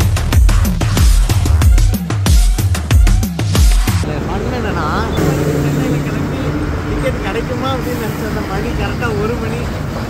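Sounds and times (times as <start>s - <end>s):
indistinct voices: 4.0s - 9.2s
vehicle engine humming: 4.0s - 10.0s.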